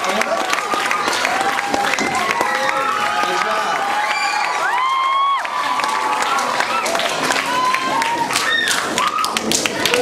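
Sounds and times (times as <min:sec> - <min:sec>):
scattered hand claps: 0:00.0 - 0:10.0.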